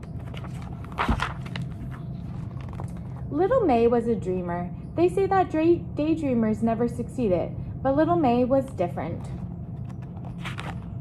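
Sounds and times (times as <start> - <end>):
book page turning: 0.0 - 3.2, 9.8 - 11.0
steady low hum: 0.0 - 11.0.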